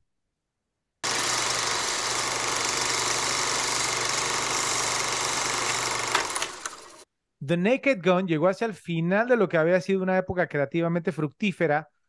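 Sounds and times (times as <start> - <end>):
film projector whirring: 1.0 - 7.0
projector clicks: 1.1 - 7.0.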